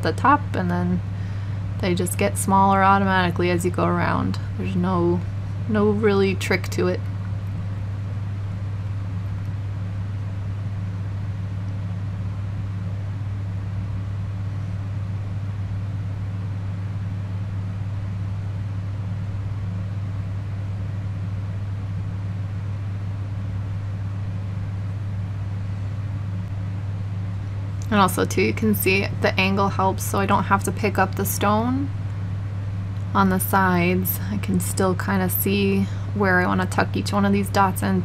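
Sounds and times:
steady low hum: 0.0s - 38.0s.

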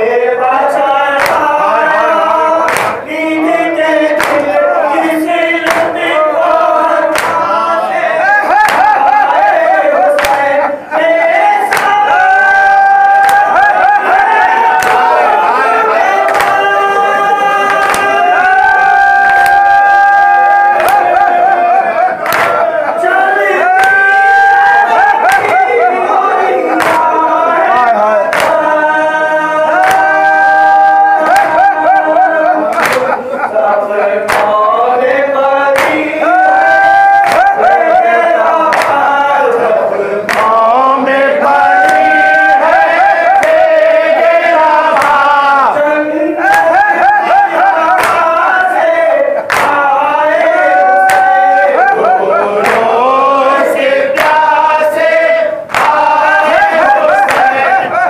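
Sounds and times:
men chanting in unison: 0.0s - 58.0s
person reciting into microphone: 0.0s - 58.0s
rhythmic chest slaps: 0.0s - 58.0s
hands striking chests: 2.7s - 3.0s, 7.1s - 7.4s, 34.3s - 34.6s, 49.5s - 49.8s.

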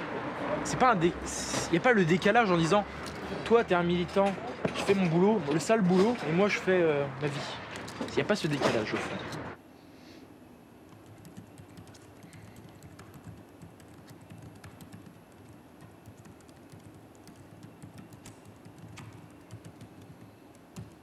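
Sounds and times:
laptop keyboard typing: 10.9s - 21.0s.

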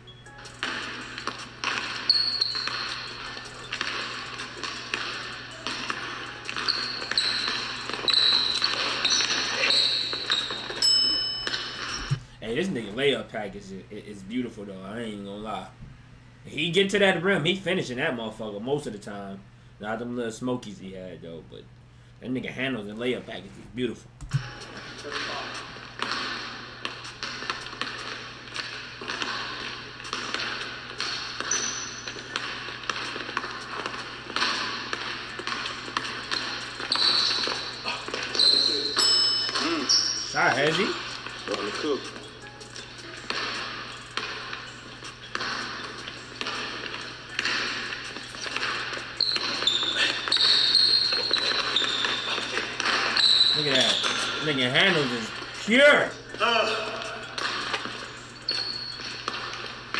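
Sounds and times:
background music: 0.0s - 12.2s
sneakers squeaking: 0.0s - 15.3s, 23.3s - 59.9s
basketball bouncing on wooden floor: 0.4s - 12.2s, 24.2s - 55.4s, 57.0s - 59.9s.

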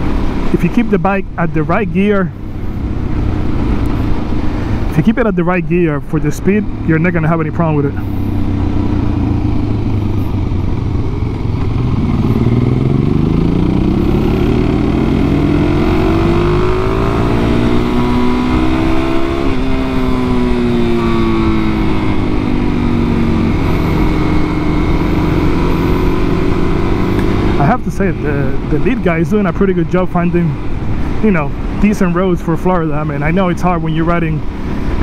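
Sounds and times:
motorcycle engine revving: 6.3s - 35.0s.

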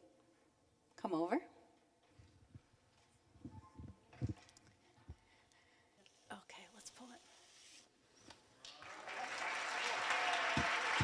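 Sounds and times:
faint whispering: 3.4s - 7.9s.

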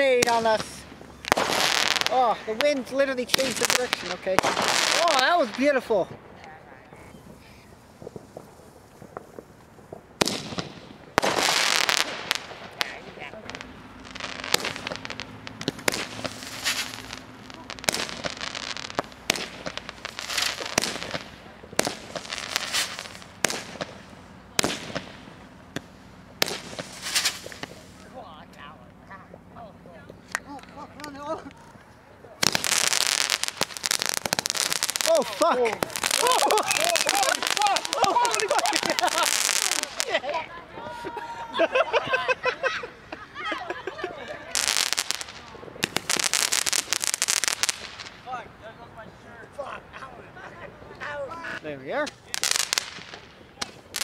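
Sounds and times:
fireworks bangs and pops: 0.0s - 41.2s, 44.3s - 54.0s
fireworks crackling: 0.0s - 54.0s.

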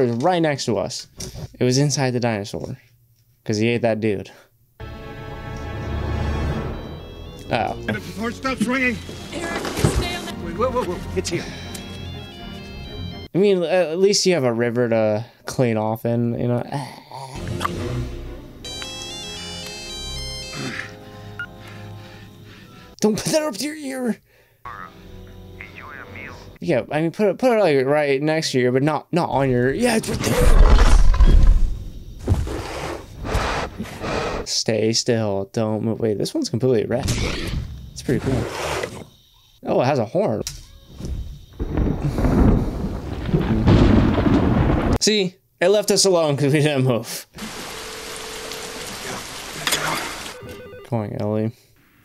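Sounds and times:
cell phone ringtone beeping melody: 4.8s - 13.3s, 18.6s - 23.0s, 24.7s - 26.6s, 50.3s - 51.4s
dinosaur growling and breathing: 32.4s - 34.5s.

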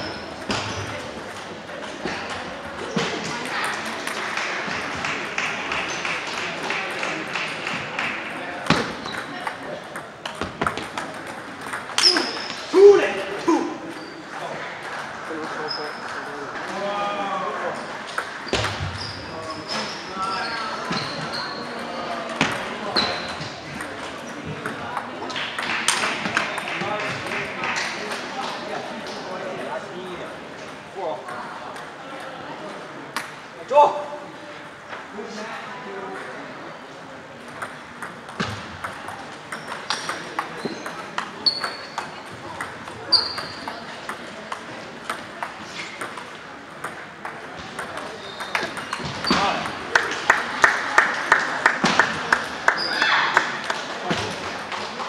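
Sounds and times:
many people talking: 0.0s - 55.0s.

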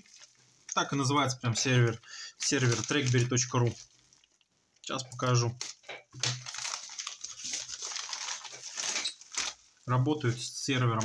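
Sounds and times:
plastic packaging rustling: 0.0s - 4.5s, 5.2s - 11.0s.

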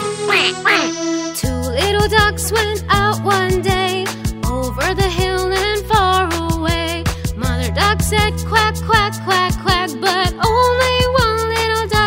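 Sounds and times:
children's song instrumental: 0.0s - 4.2s
cartoon duck quacks: 0.3s - 1.0s.

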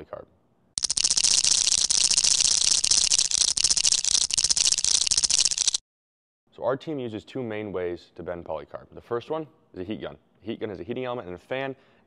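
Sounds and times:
rapid clicking rattle: 0.8s - 5.8s.

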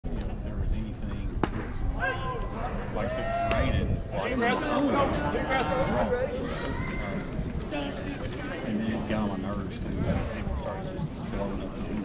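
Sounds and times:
faint voices: 0.1s - 12.0s
wind on microphone: 0.5s - 11.9s
baseball bat crack: 1.4s - 1.9s.

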